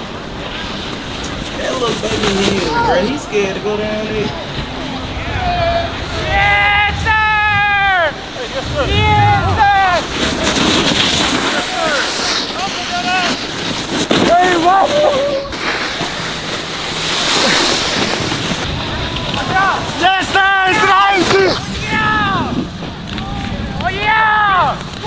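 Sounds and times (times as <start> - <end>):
snowboard scraping over snow: 0.0 - 25.0
wind buffeting microphone: 4.2 - 12.0.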